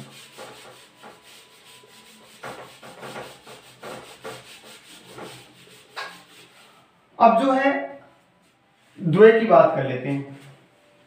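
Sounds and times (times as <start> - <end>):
hand rubbing a whiteboard: 0.0 - 6.9.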